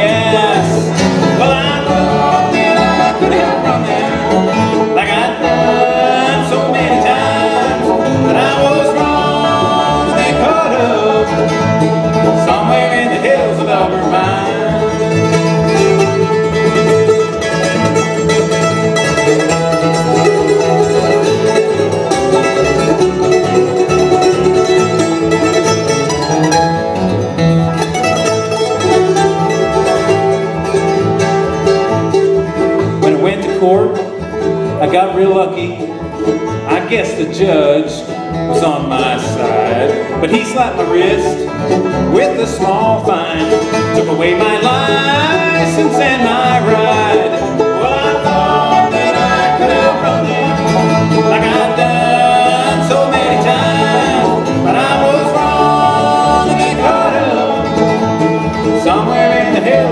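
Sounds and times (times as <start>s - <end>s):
acoustic guitar strumming: 0.0s - 59.9s
banjo picking: 0.0s - 59.9s
fiddle playing sliding notes: 0.0s - 59.9s
upright bass: 0.0s - 59.9s.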